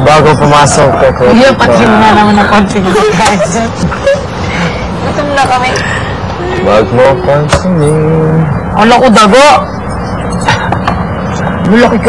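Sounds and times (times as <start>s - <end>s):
people talking casually: 0.0s - 12.0s
steady background noise: 0.0s - 12.0s.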